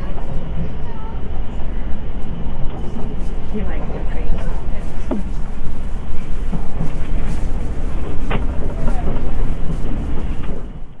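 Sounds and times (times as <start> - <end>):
train rumbling inside carriage: 0.0 - 11.0.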